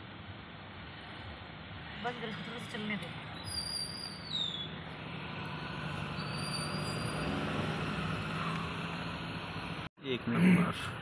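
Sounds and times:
road traffic rush: 0.0 - 11.0
high-pitched squeals: 5.9 - 7.6.

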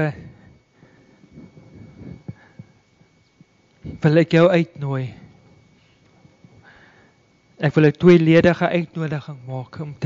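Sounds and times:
man speaking: 0.0 - 0.3, 3.9 - 5.2, 7.6 - 10.0
faint steady hum: 0.0 - 10.0.

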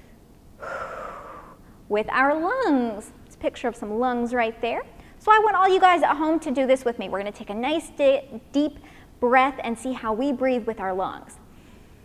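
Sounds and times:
woman breathing through mouth: 0.6 - 1.8.

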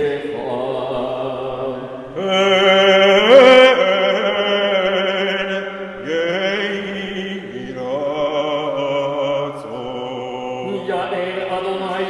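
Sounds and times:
man chanting: 2.2 - 12.0.

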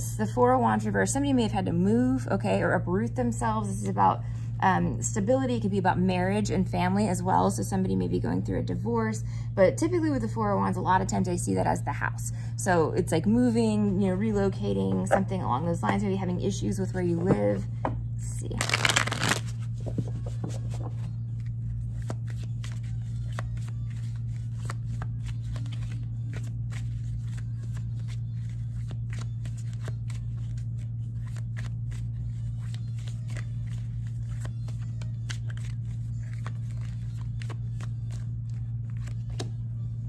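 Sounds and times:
steady low hum: 0.0 - 40.0
cards being shuffled: 18.6 - 39.7.

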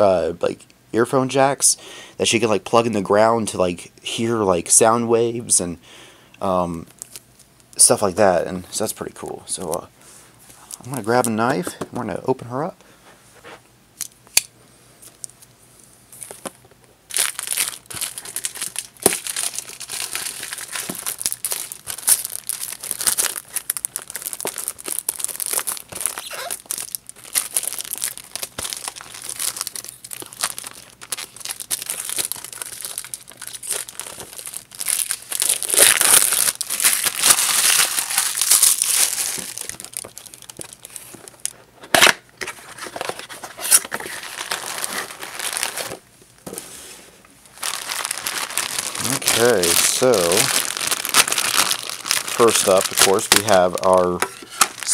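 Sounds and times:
packaging crinkling and rustling: 16.1 - 54.9
packaging tearing: 17.1 - 46.0, 47.5 - 54.9.

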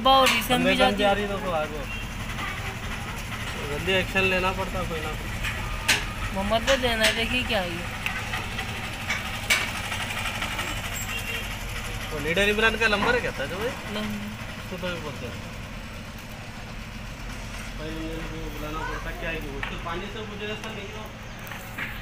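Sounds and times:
onlookers talking: 0.0 - 9.0, 9.8 - 21.2
low engine-like rumble: 0.0 - 22.0.

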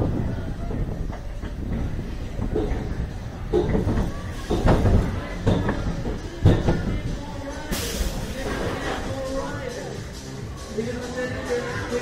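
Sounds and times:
roller coaster wheels rumbling: 0.0 - 10.1.

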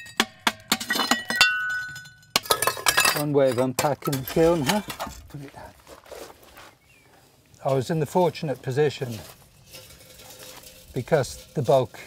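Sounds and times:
faint rustling: 4.4 - 12.0.

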